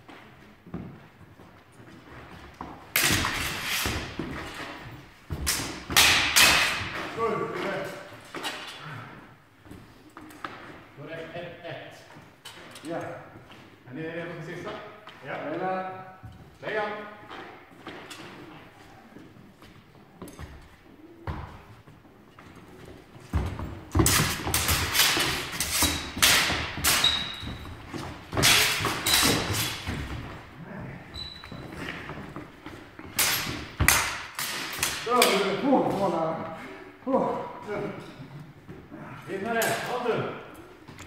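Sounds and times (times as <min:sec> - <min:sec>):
people talking: 0:07.1 - 0:08.1, 0:35.0 - 0:38.1
footwork thudding on wooden floor: 0:22.9 - 0:34.0.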